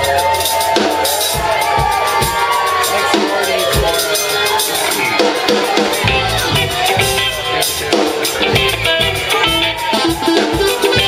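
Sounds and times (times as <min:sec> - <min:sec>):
drum kit: 0:00.0 - 0:11.0
live band playing instrumental: 0:00.0 - 0:11.0.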